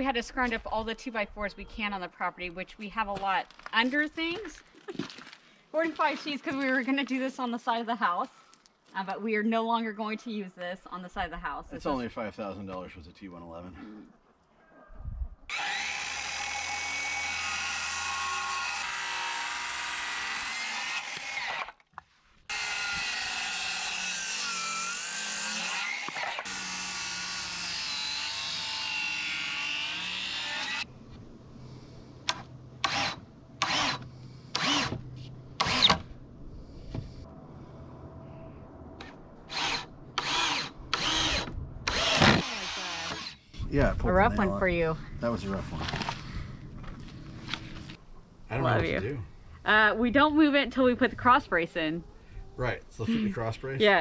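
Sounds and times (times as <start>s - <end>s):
circular saw cutting wood: 15.5s - 21.8s, 22.5s - 30.9s, 31.7s - 36.1s, 39.0s - 43.6s
low steady hum: 30.0s - 54.0s.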